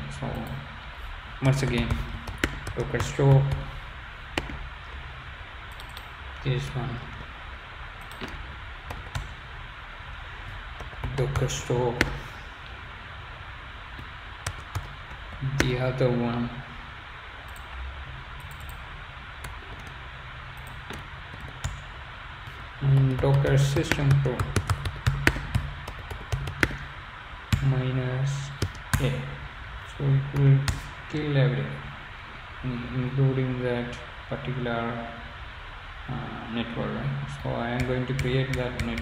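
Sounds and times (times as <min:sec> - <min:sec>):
steady low hiss and hum: 0:00.0 - 0:39.0
computer keyboard typing: 0:01.4 - 0:03.7, 0:05.7 - 0:06.2, 0:08.0 - 0:09.4, 0:14.4 - 0:15.8, 0:18.4 - 0:18.8, 0:20.6 - 0:21.9, 0:22.9 - 0:26.9, 0:28.6 - 0:29.1, 0:37.8 - 0:39.0.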